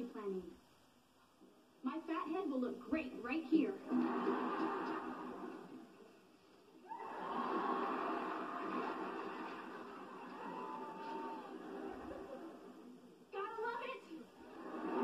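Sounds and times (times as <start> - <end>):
studio audience laughter: 3.8 - 5.9, 7.0 - 13.0, 14.4 - 15.0.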